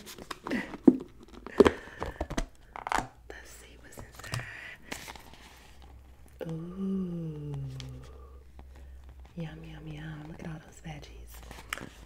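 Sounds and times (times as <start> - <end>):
woman humming: 6.4 - 8.4.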